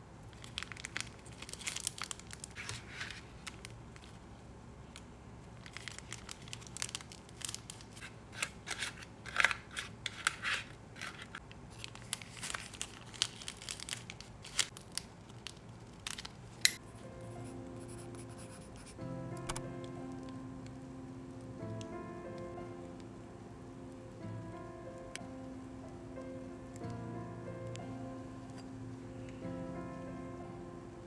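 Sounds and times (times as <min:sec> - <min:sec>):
plastic piping bag crinkling: 0:00.2 - 0:16.8
soft background music: 0:16.2 - 0:31.0.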